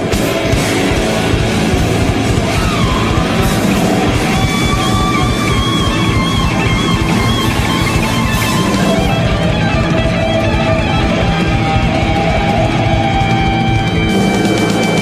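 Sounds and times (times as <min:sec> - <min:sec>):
electric guitar lead line: 0:00.0 - 0:15.0
live rock band: 0:00.0 - 0:15.0.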